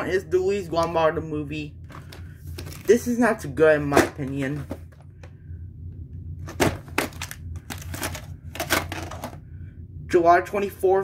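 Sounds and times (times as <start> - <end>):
low steady hum: 0.0 - 11.0
plastic case clicks and clatters: 6.5 - 9.4.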